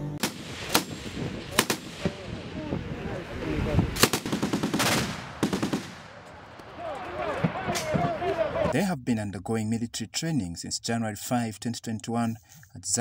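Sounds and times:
machine gun firing: 0:00.2 - 0:02.3, 0:04.0 - 0:06.2.

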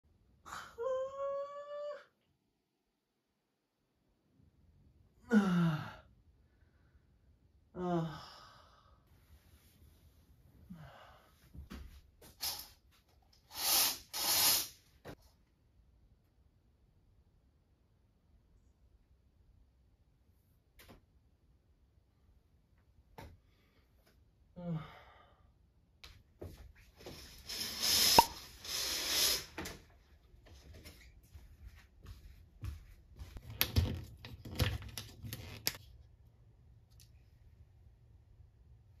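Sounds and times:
man sighing: 0:05.2 - 0:06.1, 0:07.8 - 0:09.0, 0:24.6 - 0:25.4.

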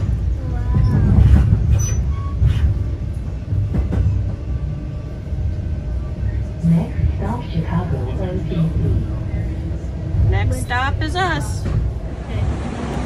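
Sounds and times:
train rumble: 0:00.0 - 0:13.0.

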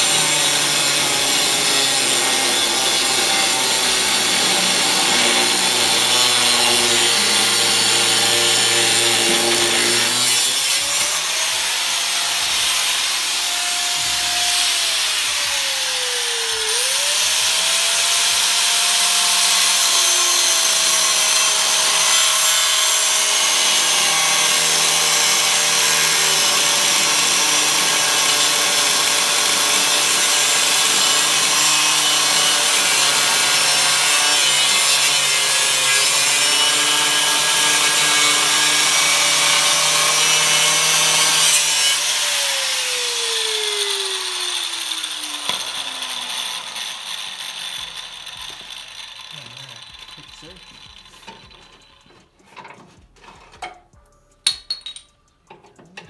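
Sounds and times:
angle grinder grinding steel: 0:00.0 - 0:53.6.

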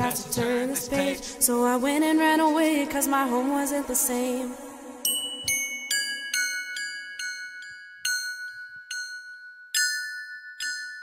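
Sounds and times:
bright chime notes: 0:05.0 - 0:11.0.

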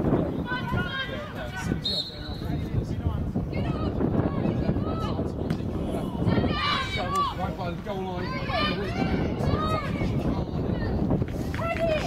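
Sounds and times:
wind rumble on microphone: 0:00.0 - 0:12.0
players shouting: 0:00.3 - 0:02.4, 0:06.1 - 0:10.9.

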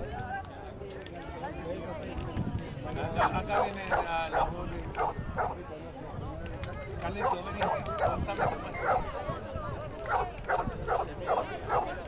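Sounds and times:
faint outdoor voices: 0:00.0 - 0:12.0
dog barking: 0:03.2 - 0:05.6, 0:08.4 - 0:09.1, 0:10.1 - 0:12.0.

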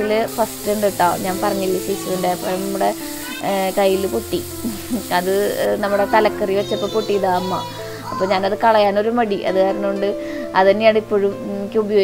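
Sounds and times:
shallots sizzling in hot oil: 0:00.0 - 0:09.0
background music: 0:00.0 - 0:12.0.

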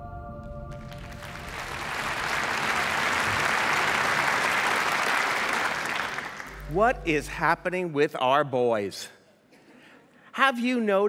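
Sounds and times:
audience applauding: 0:00.7 - 0:06.9.

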